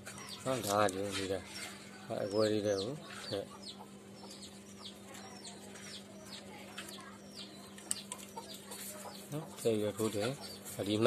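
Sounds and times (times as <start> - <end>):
birds chirping: 0.0 - 11.0
steady low hum: 0.0 - 11.0.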